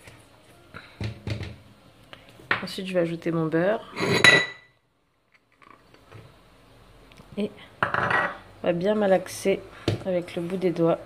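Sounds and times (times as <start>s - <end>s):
ceramic dish clinking metal bowl: 4.0s - 4.7s.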